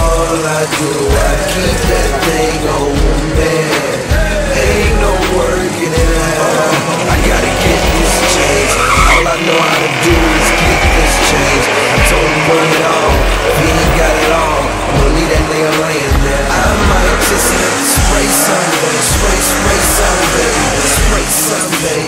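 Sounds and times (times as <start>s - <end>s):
hip hop music with bass beat: 0.0s - 22.0s
race cars at full throttle: 0.0s - 22.0s
tire squeal: 6.4s - 16.1s.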